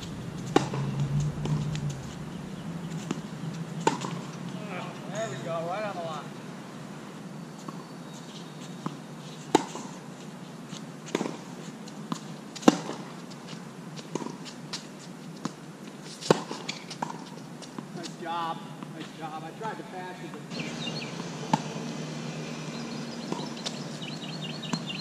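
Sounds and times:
tennis ball bouncing: 0.1 - 1.6, 3.8 - 4.4
racket striking tennis ball: 0.5 - 1.6.

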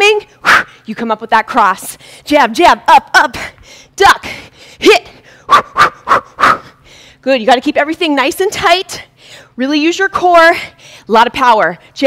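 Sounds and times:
woman's sharp exertion breaths: 0.3 - 0.9, 2.0 - 2.3, 3.5 - 7.2, 9.1 - 9.6, 10.6 - 11.1.

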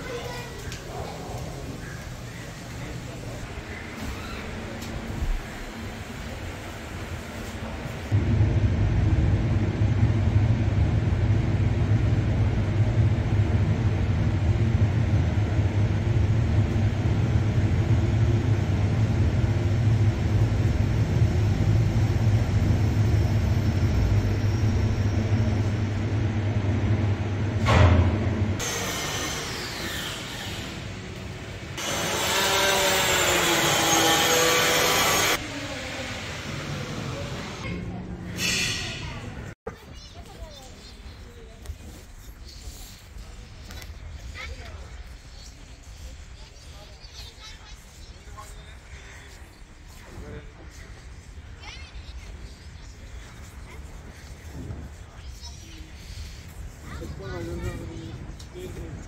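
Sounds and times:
elevator hum and rumble: 1.3 - 29.6
elevator car stopping thump: 27.4 - 28.6.

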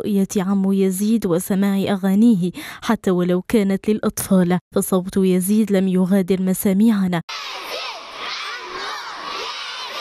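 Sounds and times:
children shouting and cheering: 7.3 - 10.0.

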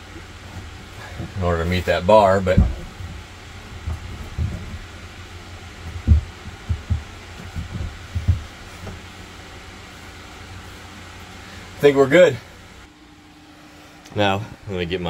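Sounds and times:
steady low hum: 0.0 - 15.0
plastic tank thumping: 2.3 - 5.1, 5.8 - 9.0.

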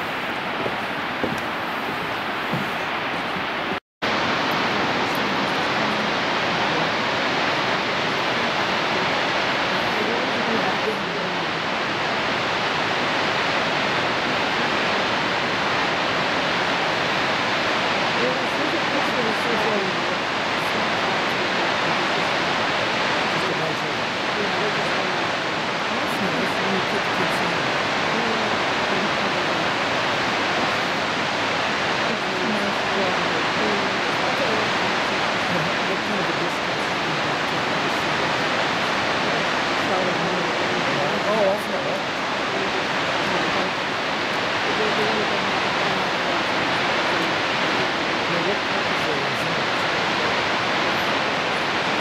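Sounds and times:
waterfall rushing: 0.0 - 52.0.

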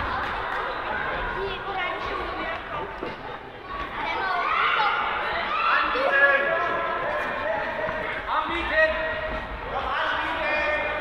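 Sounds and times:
children chattering and shouting: 0.0 - 10.8.

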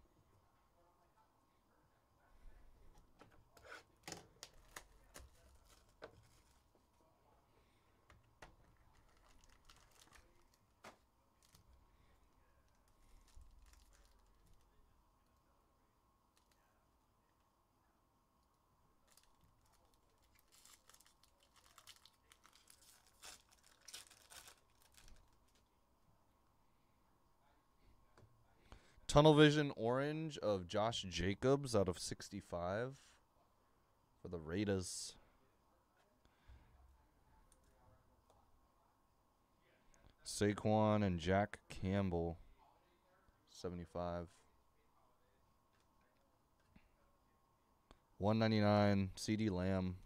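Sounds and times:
wrapper tearing and crinkling: 8.9 - 10.7, 12.8 - 14.6, 19.0 - 25.6.

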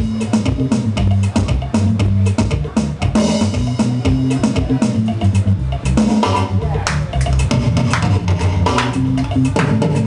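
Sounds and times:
bass guitar: 0.0 - 10.0
drum kit: 0.0 - 10.0.

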